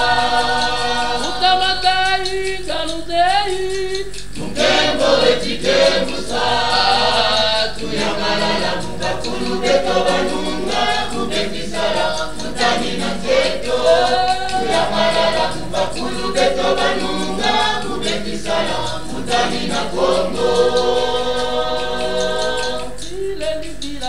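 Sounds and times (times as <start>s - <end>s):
choir singing: 0.0s - 1.9s, 4.4s - 24.0s.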